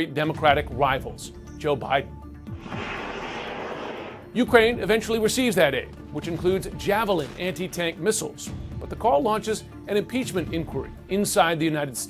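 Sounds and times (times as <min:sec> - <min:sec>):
background music: 0:00.0 - 0:12.0
aircraft rushing: 0:02.5 - 0:04.4.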